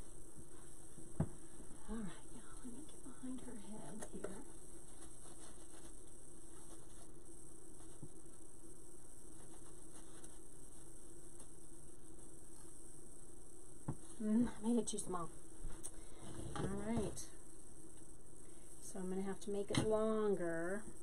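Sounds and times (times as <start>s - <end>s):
faint rustling: 0.0s - 18.8s
low room hum: 0.0s - 21.0s.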